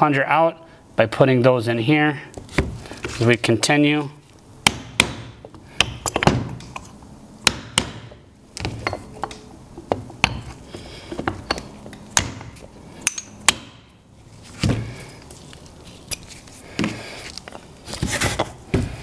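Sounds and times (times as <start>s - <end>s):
hammer striking steel punch: 4.6s - 6.5s, 7.4s - 8.2s, 12.2s - 13.9s.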